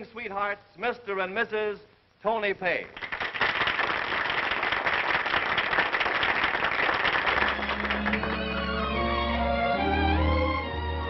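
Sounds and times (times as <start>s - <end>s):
audience applauding: 3.0s - 9.5s
orchestra with held string notes: 7.5s - 11.0s.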